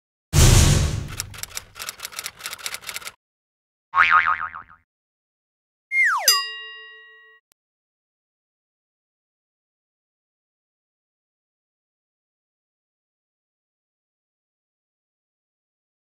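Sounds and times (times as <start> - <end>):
uneven clicks: 1.1 - 3.2
ringing chime: 6.3 - 7.4.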